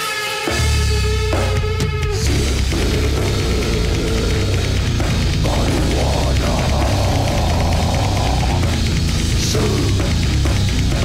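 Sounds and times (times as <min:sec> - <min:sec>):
distorted metal guitars: 0:00.0 - 0:11.0
rapid loud drumming: 0:00.6 - 0:11.0.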